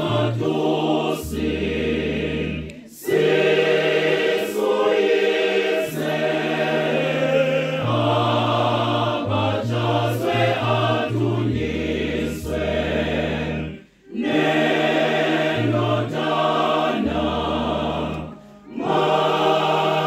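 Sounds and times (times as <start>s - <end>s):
choir singing a church song: 0.0s - 20.0s
electronic keyboard bass notes: 7.7s - 13.8s.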